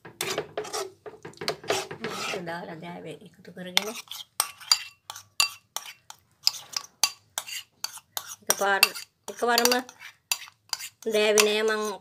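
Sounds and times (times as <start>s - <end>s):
metal spatula scraping a wok: 0.0s - 2.5s, 3.8s - 12.0s
sharp clicks of metal on cookware: 9.6s - 9.9s.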